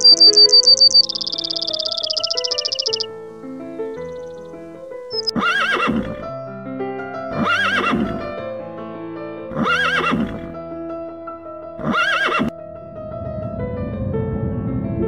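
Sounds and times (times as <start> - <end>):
music with long held notes: 0.0 - 5.2
horse whinnying: 5.2 - 6.3, 7.3 - 8.2, 9.5 - 10.5, 11.8 - 12.5.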